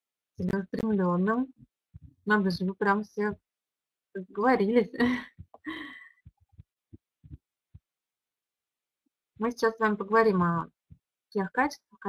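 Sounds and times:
soft low thumps: 1.6 - 3.4, 5.0 - 8.0.

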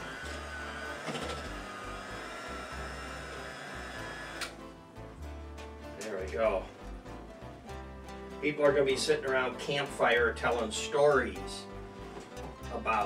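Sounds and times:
electric hand mixer running: 0.0 - 4.6.

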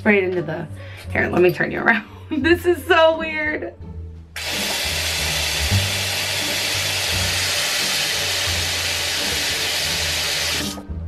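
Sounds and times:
water jet spraying into sink: 4.4 - 10.8.

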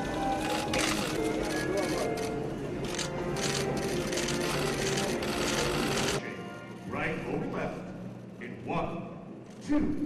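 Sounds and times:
camera shutters clicking rapidly: 0.5 - 6.2.

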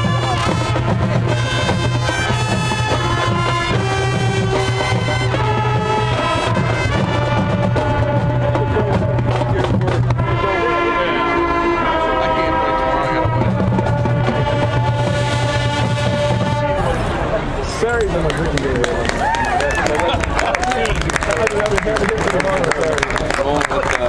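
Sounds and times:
drumline: 0.0 - 16.8
brass and woodwind chords: 0.0 - 17.6.

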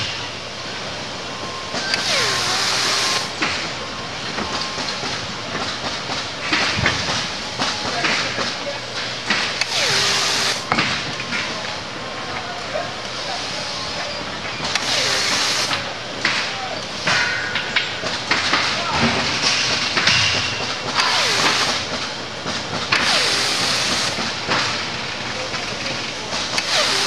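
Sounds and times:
factory noise: 0.0 - 27.0
pneumatic tool air hiss: 1.8 - 3.4, 9.6 - 10.7, 14.7 - 15.8, 20.9 - 21.9, 23.0 - 24.3, 26.6 - 27.0.

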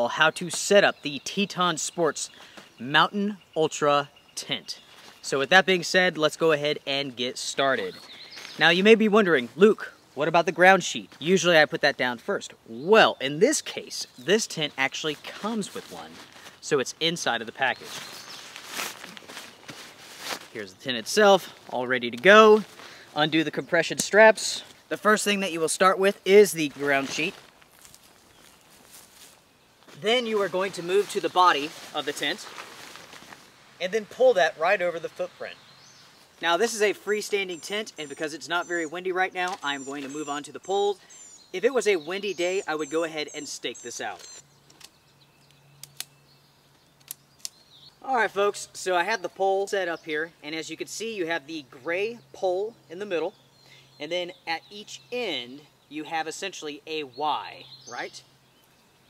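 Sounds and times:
nylon sack rustling: 14.9 - 23.4, 26.4 - 34.4
tent pole sections clicking: 44.1 - 46.1, 47.0 - 47.6.

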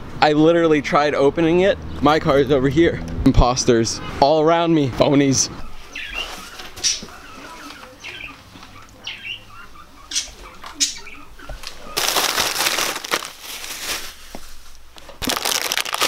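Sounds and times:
plastic bags rustling: 11.5 - 16.0.

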